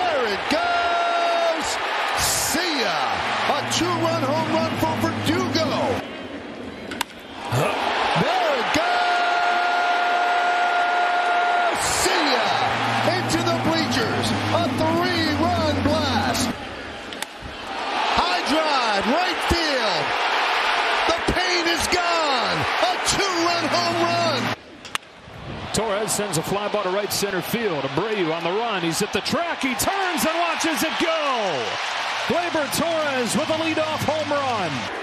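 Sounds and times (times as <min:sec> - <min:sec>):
crowd shouting: 0:00.0 - 0:06.0, 0:07.4 - 0:16.5, 0:17.7 - 0:24.6.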